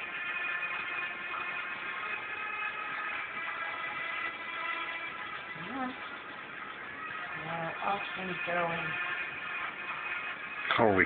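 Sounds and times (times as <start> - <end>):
background music with sustained tones: 0.0 - 11.0.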